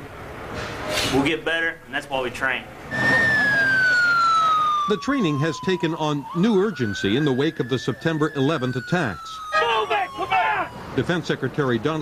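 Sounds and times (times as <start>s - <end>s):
fire engine siren wailing: 2.9s - 12.0s.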